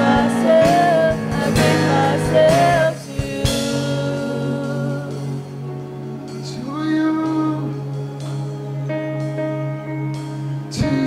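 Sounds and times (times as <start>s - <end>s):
slow worship music chords: 0.0s - 11.0s.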